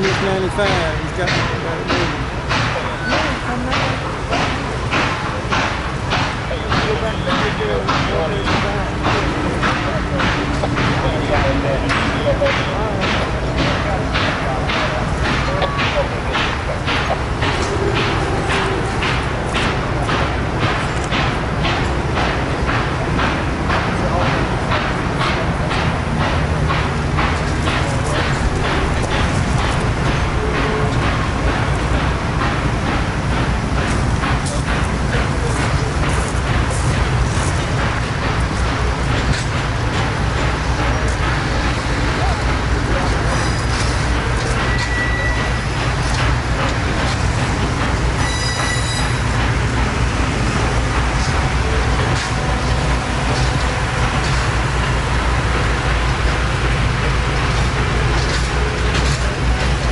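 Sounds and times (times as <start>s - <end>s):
train cars rumbling past: 0.0s - 59.9s
wheels clickety-clack: 0.0s - 59.9s
high-pitched wheel squeals: 44.7s - 45.6s, 48.2s - 49.2s.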